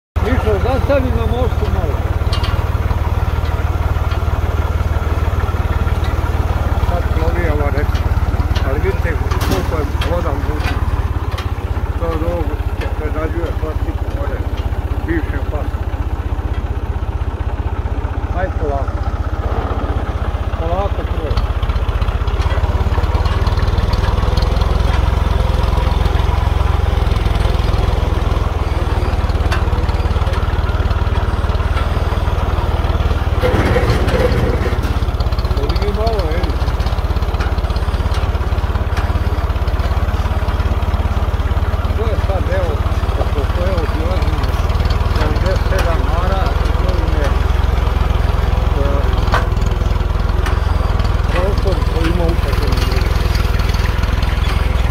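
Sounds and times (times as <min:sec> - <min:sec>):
tractor engine rumble: 0:00.2 - 0:54.9.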